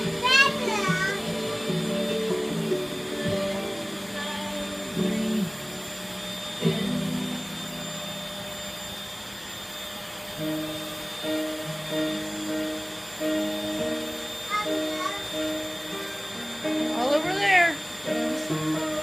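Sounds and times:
background music: 0.0 - 8.4, 10.4 - 19.0
stick vacuum whining: 0.0 - 19.0.

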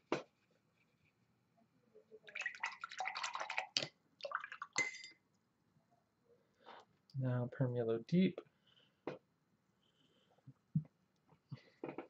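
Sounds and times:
glass clink: 4.8 - 5.2.

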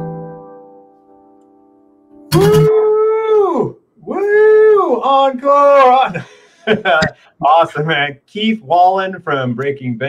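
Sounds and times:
man whooping cheer: 2.3 - 6.2.

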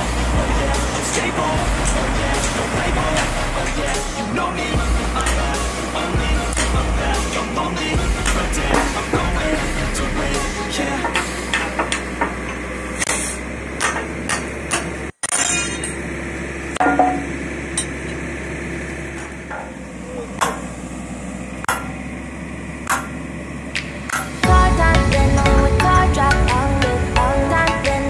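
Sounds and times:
metal knocks and clanks: 16.8 - 18.0, 19.2 - 19.8.

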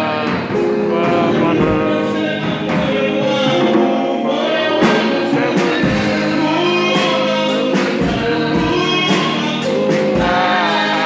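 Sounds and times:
instrumental backing with beat: 0.0 - 11.0
women singing gospel song: 0.0 - 11.0.

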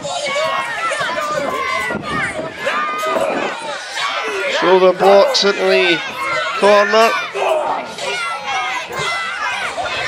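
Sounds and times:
crowd of children shouting: 0.0 - 10.0.

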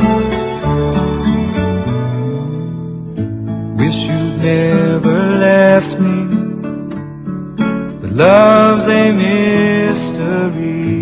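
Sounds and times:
soft pop ballad accompaniment: 0.0 - 11.0.

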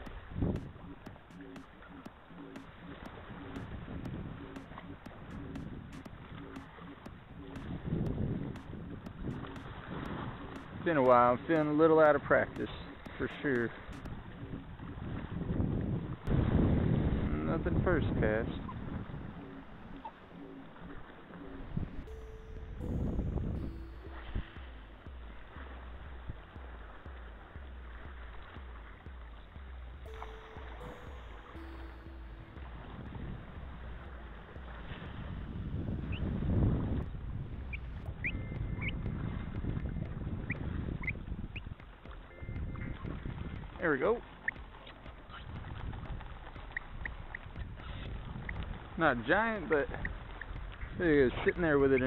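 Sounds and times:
wind on microphone: 0.0 - 2.1, 2.7 - 31.7, 32.4 - 52.0
low two-tone sound: 0.0 - 15.2, 16.3 - 49.0
surf washing over rocks: 7.6 - 14.1
short high chirps: 30.0 - 34.0.

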